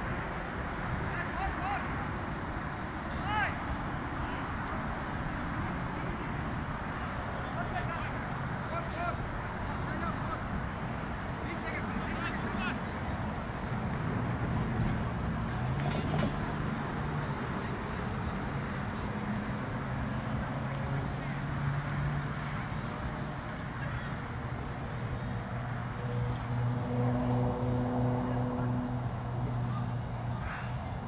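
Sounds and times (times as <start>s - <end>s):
distant shouts from players: 3.1s - 4.5s, 23.7s - 24.3s, 29.7s - 30.9s.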